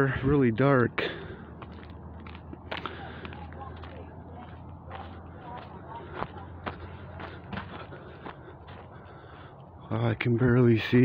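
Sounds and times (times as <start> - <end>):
soft footsteps: 1.5 - 9.8.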